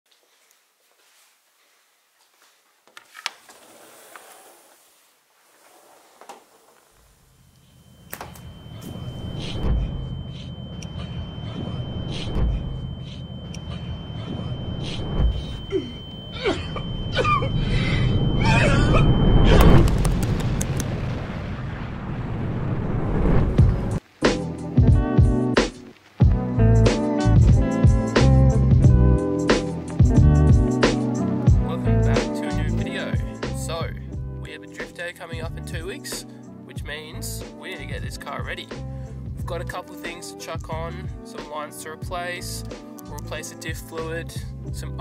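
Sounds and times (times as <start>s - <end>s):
sliding door opening: 3.1s - 4.9s
thin high whine: 6.8s - 20.2s
steady low rumble: 8.5s - 24.0s.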